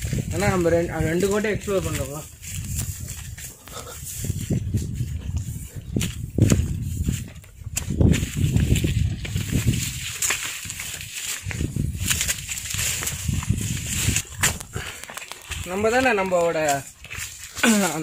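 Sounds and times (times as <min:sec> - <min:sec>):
low microphone rumbles: 0:00.0 - 0:15.9
footsteps on rocky path: 0:00.0 - 0:18.0
rustling through dry brush: 0:00.0 - 0:18.0.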